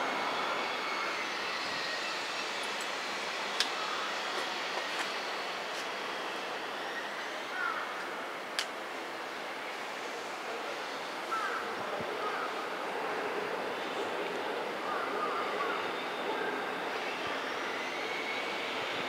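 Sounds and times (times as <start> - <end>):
distant freight train rumble: 0.0 - 19.0.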